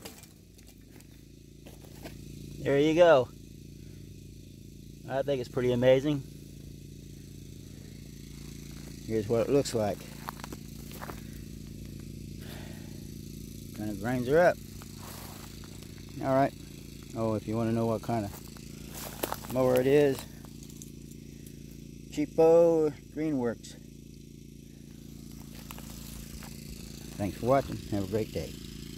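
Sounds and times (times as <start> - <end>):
electric lawn mower humming: 0.0 - 28.9.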